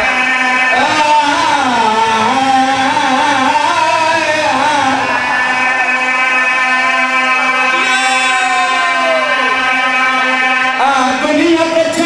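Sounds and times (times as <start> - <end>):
man chanting through a loudspeaker: 0.0 - 12.0.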